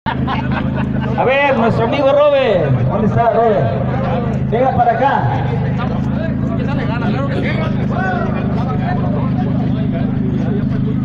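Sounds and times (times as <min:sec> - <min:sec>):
vehicle engine idling: 0:00.1 - 0:11.0.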